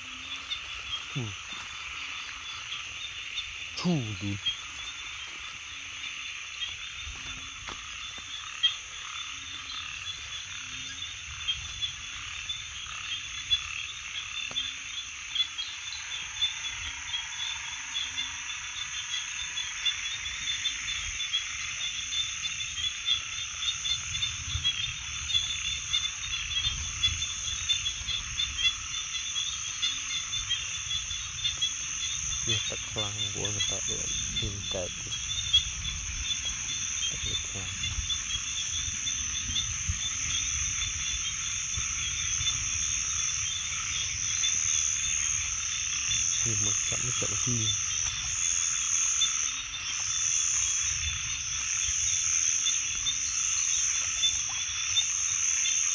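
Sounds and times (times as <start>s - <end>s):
frogs croaking: 0.0s - 55.9s.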